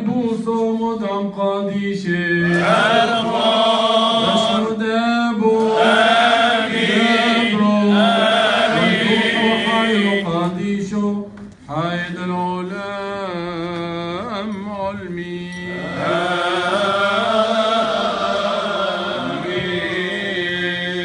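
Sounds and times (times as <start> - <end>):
men chanting a hymn: 1.5 - 14.5, 15.4 - 21.0.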